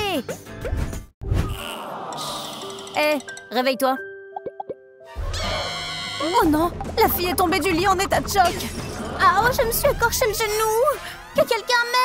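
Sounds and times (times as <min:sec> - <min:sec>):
dramatic music cue with bass: 0:06.4 - 0:11.4.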